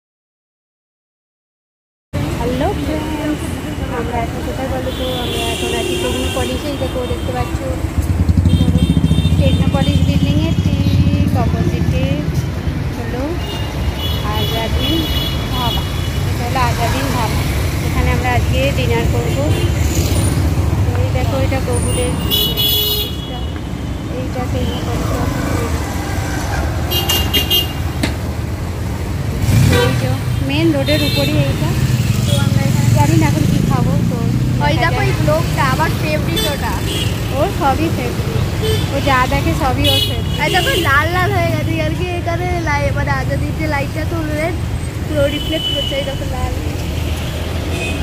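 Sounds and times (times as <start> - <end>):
road traffic rumble: 2.1 - 48.0
vehicle horn: 4.9 - 7.6, 8.4 - 11.1, 21.9 - 23.6, 26.9 - 28.0, 29.5 - 30.2, 36.3 - 37.4, 38.6 - 39.0, 39.8 - 41.0.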